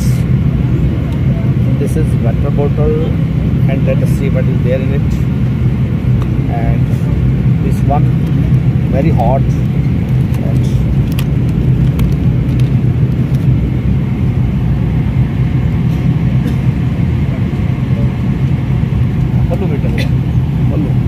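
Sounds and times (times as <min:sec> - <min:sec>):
airliner cabin drone: 0:00.0 - 0:21.0.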